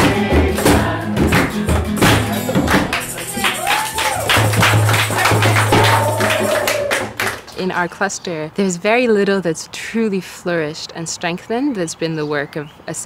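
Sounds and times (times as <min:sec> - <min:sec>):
voices singing along: 0:00.0 - 0:04.3
strummed acoustic guitars: 0:00.0 - 0:06.5
djembe hand drums: 0:00.0 - 0:06.6.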